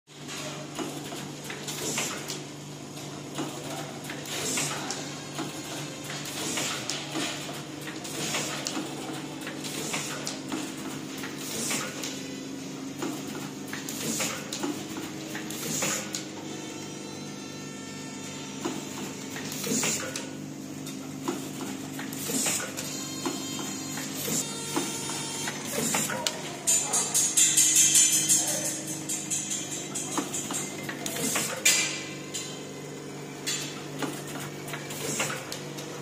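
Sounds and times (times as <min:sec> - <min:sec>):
steady machine hum: 0:04.8 - 0:36.0
packing machine clicks: 0:20.9 - 0:32.5.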